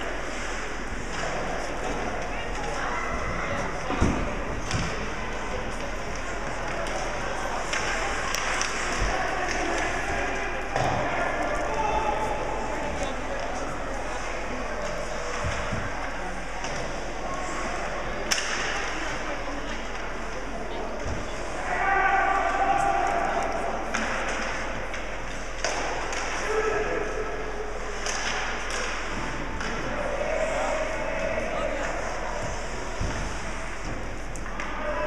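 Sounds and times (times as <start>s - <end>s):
murmur of voices: 0.0s - 35.0s.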